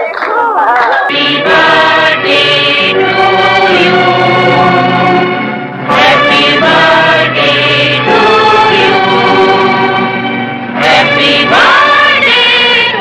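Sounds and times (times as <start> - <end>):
choir singing: 1.0 - 13.0.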